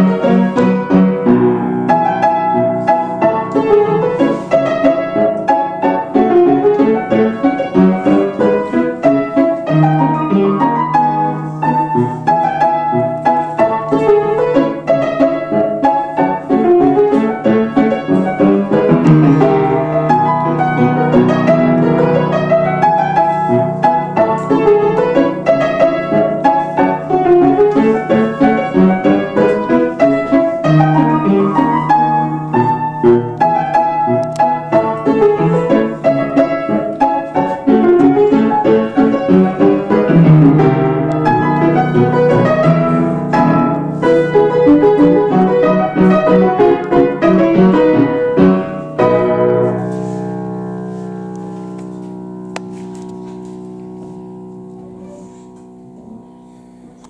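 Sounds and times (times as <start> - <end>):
upright piano quick runs: 0.0 - 57.0.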